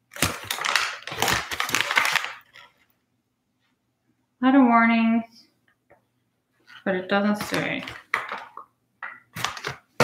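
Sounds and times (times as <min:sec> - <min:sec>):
plastic pouch crinkling: 0:00.0 - 0:02.9, 0:09.3 - 0:10.0.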